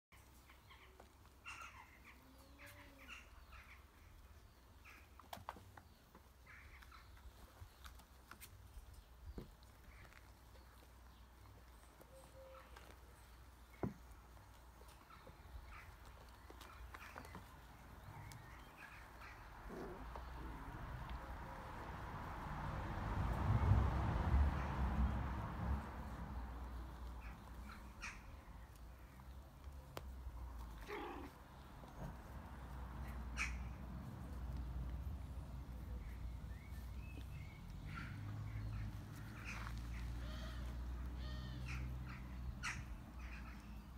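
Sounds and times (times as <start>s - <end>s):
puppy yelping: 30.8s - 31.4s.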